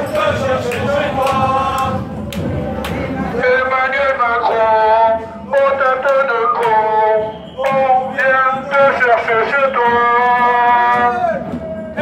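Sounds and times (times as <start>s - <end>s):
protesters chanting in unison: 0.0s - 12.0s.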